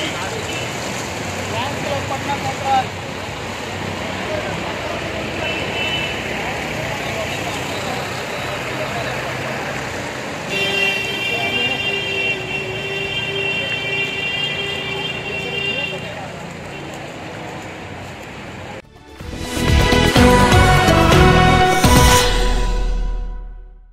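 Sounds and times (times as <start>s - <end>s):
vehicles driving through water: 0.0s - 18.8s
vehicle horn long note: 10.5s - 16.0s.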